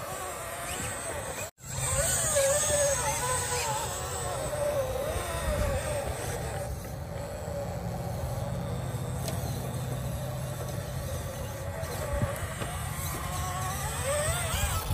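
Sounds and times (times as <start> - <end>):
electric motor whining: 0.0 - 14.9.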